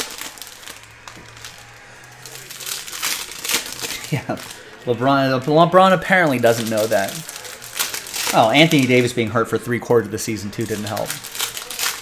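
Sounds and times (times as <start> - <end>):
plastic foil wrappers crinkling: 0.0 - 12.0.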